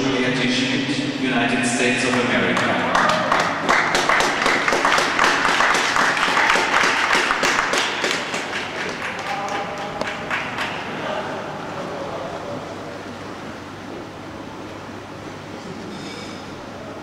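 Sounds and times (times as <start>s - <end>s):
audience applauding: 2.0s - 11.4s.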